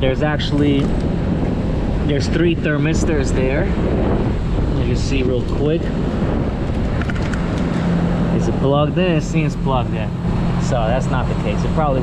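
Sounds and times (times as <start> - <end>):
steady low hum: 0.0 - 12.0
wind rumbling on microphone: 0.0 - 12.0.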